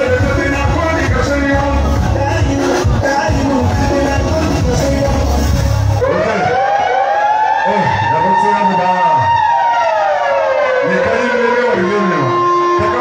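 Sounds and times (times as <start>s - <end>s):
person talking on microphone: 0.0s - 6.9s, 7.6s - 9.5s, 10.6s - 13.0s
dance music: 0.0s - 13.0s
siren-like sound effect: 5.9s - 13.0s.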